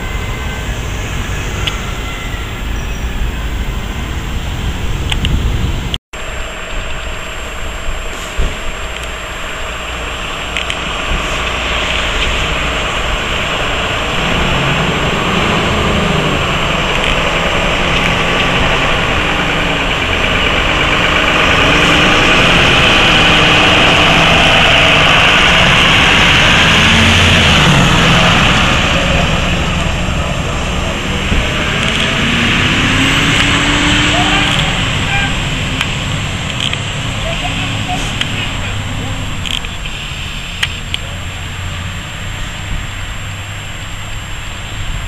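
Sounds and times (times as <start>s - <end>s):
diesel engine running and revving: 0.0s - 45.0s.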